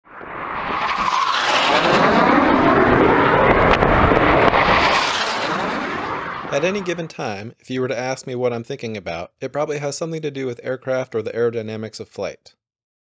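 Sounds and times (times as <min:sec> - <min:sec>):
aircraft passing low overhead: 0:00.0 - 0:07.4.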